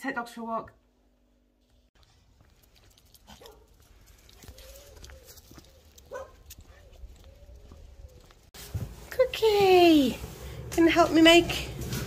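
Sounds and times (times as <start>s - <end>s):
low outdoor rumble: 7.6s - 12.0s.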